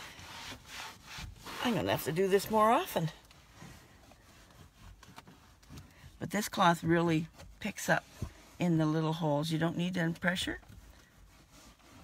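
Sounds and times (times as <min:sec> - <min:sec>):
cloth rubbing plastic trim: 0:00.0 - 0:08.9, 0:09.9 - 0:12.0.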